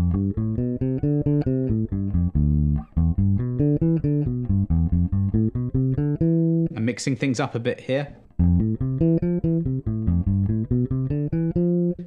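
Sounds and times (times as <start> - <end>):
electric bass plucked notes: 0.0 - 7.0, 8.3 - 12.0.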